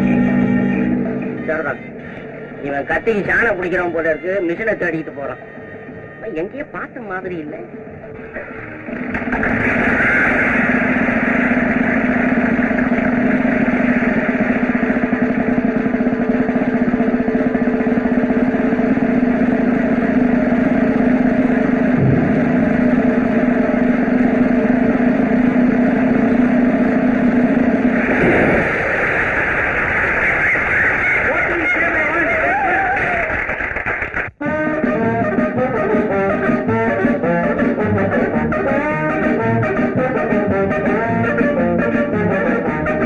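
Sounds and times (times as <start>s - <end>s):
music: 0.0s - 10.8s, 12.8s - 26.8s, 34.4s - 43.0s
motorcycle engines droning: 8.9s - 29.1s.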